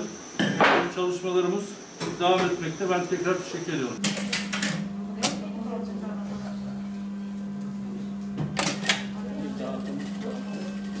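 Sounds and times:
sewing machine humming: 0:09.4 - 0:11.0.

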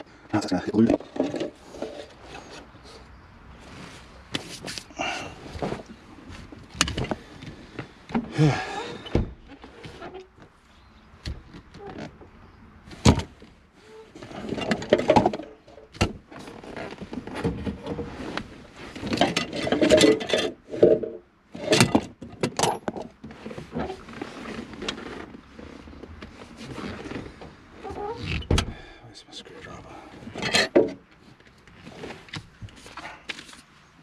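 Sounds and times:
rustling: 0:01.0 - 0:10.8, 0:23.2 - 0:28.4.

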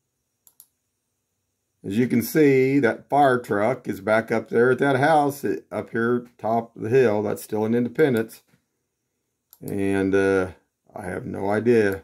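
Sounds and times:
man speaking: 0:01.8 - 0:08.5, 0:09.6 - 0:12.0.

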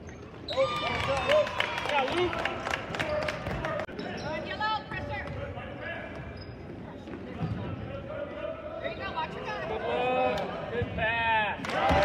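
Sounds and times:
voices and shouts echoing: 0:00.5 - 0:12.0.

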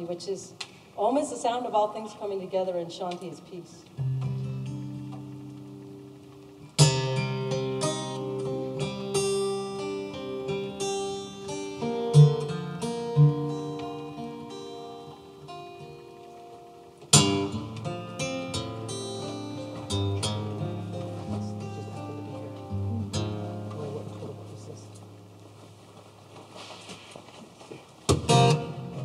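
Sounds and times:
acoustic guitar strumming and picking: 0:04.0 - 0:26.4, 0:28.0 - 0:29.0.

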